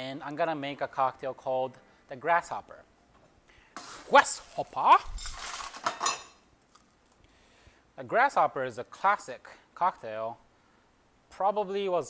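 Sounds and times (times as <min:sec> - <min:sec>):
glass clinking: 0:05.1 - 0:06.4.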